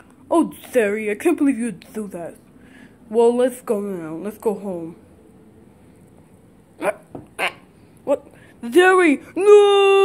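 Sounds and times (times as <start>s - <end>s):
sharp bark-like calls: 7.4s - 7.7s.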